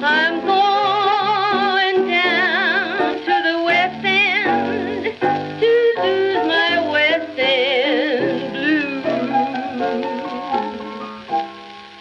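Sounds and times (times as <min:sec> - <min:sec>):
woman singing jazz: 0:00.0 - 0:10.9
piano chords: 0:00.0 - 0:12.0.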